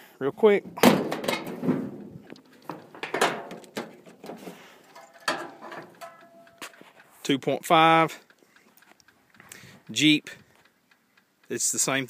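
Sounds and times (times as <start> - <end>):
clicks and clunks of metal hood: 0.7 - 6.4.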